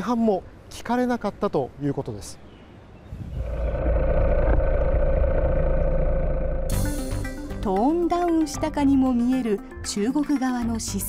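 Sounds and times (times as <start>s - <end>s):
steady low rumble: 3.1s - 8.0s.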